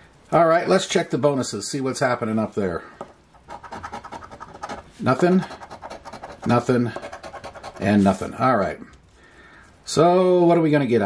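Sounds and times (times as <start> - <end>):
coin scraping lottery ticket: 3.4 - 8.2.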